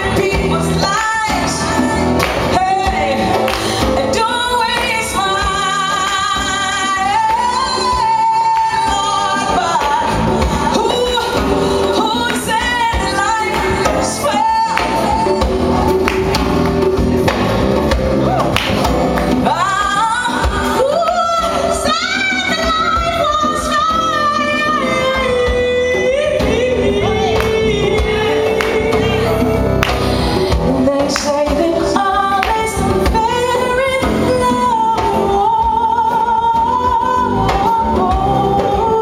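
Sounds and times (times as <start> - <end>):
conga drums: 0.0 - 39.0
live band accompaniment: 0.0 - 39.0
woman singing long notes: 19.5 - 39.0.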